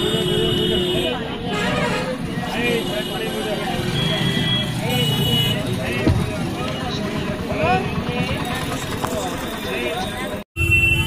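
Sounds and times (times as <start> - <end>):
street traffic: 0.0 - 11.0
voices chattering: 0.0 - 11.0.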